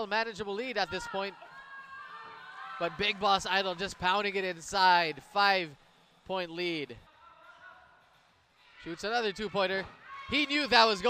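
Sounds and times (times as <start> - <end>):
basketball game ambience: 0.0 - 11.0.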